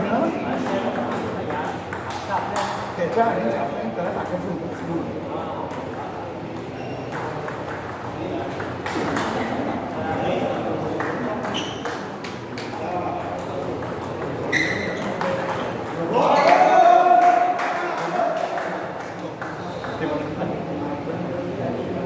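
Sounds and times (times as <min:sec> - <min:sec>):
people talking: 0:00.0 - 0:22.0
ball bouncing on table: 0:00.5 - 0:03.4, 0:04.0 - 0:05.1, 0:05.7 - 0:16.1
ball clicking off bats: 0:00.6 - 0:03.3, 0:05.7 - 0:09.5.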